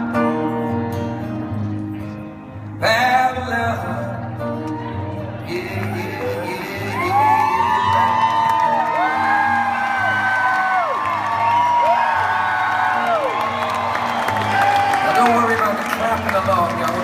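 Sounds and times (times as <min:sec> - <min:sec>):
audience whooping: 0:06.0 - 0:17.0.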